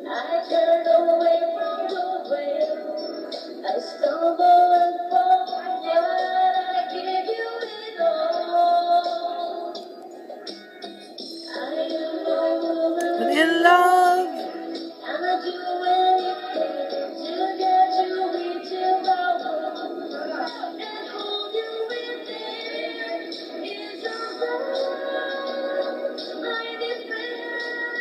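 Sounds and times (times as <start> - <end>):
tinny singing over backing music: 0.0 - 10.0, 11.3 - 28.0.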